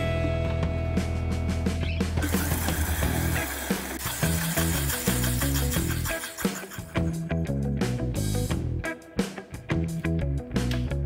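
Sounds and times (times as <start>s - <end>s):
guitar music: 0.0s - 11.0s
blender motor running: 2.2s - 7.1s.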